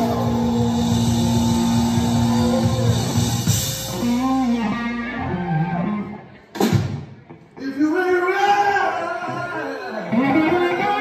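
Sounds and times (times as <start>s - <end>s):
live blues-rock band playing: 0.0s - 7.6s, 10.0s - 11.0s.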